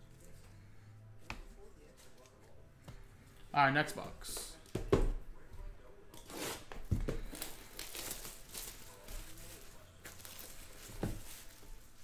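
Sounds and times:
plastic wrap crinkling and tearing: 6.2 - 12.0.

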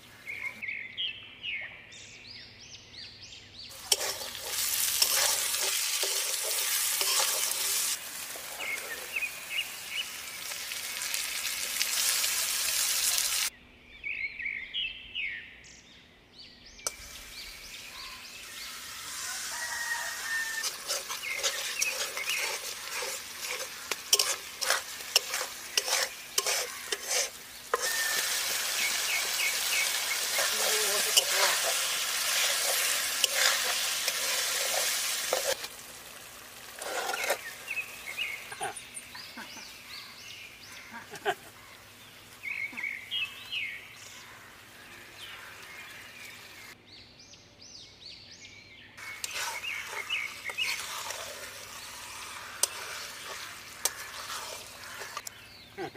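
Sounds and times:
spice paste sizzling in a pan: 3.7 - 13.5, 16.9 - 39.0, 49.0 - 55.3
metal spatula scraping a pan: 3.8 - 9.2, 19.4 - 35.8, 36.6 - 38.7, 49.0 - 55.3.

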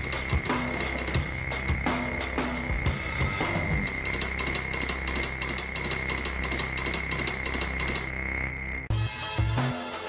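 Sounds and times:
backing music with drum beat: 0.0 - 8.1, 8.9 - 10.0.

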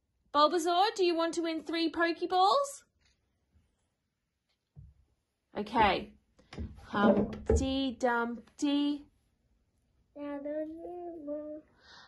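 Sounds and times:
child singing: 10.2 - 11.8.

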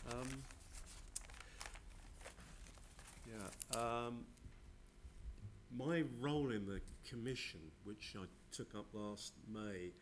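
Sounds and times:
papers crinkling and clicking: 0.0 - 3.9.

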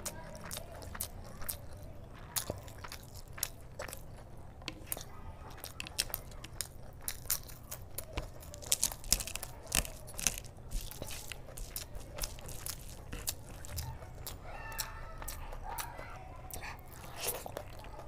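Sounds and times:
chewing with crisp crunches: 0.0 - 18.0.

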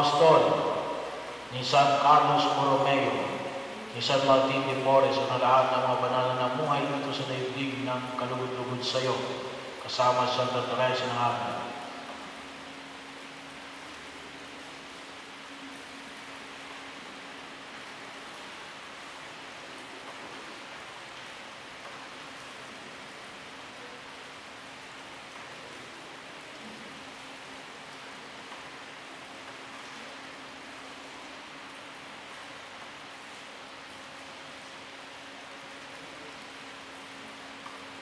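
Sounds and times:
room noise hiss: 0.0 - 38.0.

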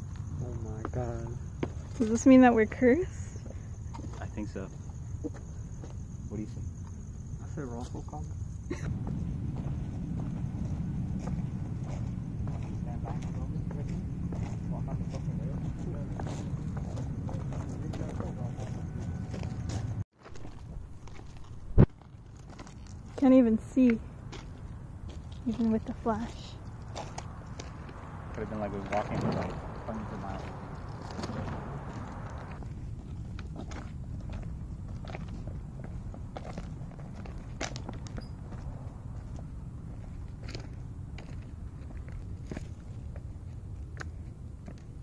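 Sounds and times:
low steady rumbling: 8.3 - 20.0, 23.0 - 45.0
footsteps crunching on gravel: 8.9 - 45.0.

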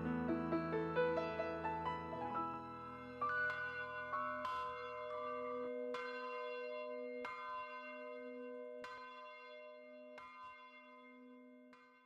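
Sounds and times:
church bell ringing: 0.0 - 11.9.

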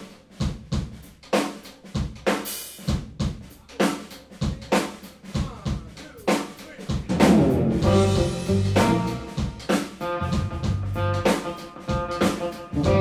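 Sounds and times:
drum kit playing: 0.0 - 13.0
electric bass: 7.1 - 11.4, 12.2 - 13.0
electric guitar: 7.1 - 13.0.

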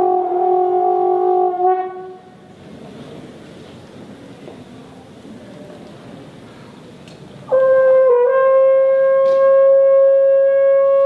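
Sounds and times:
trombone long note: 0.0 - 2.4, 7.5 - 11.0.

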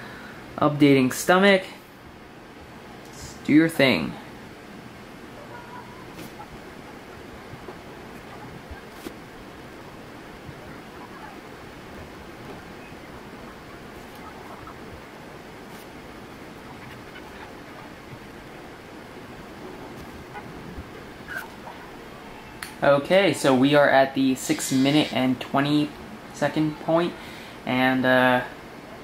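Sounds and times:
room tone hiss: 0.0 - 29.0.

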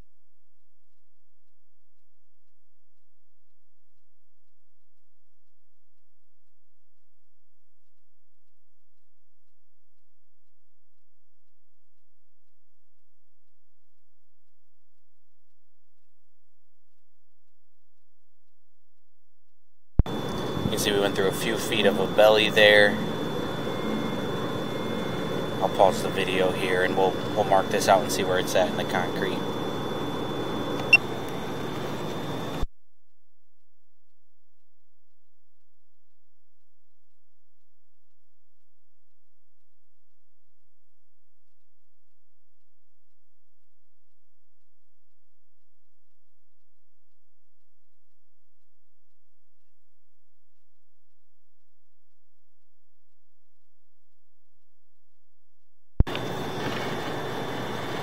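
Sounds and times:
faint high whine: 20.0 - 32.7, 56.0 - 58.0
steady mechanical noise: 20.0 - 32.7, 56.0 - 58.0
steady hiss: 56.1 - 58.0.

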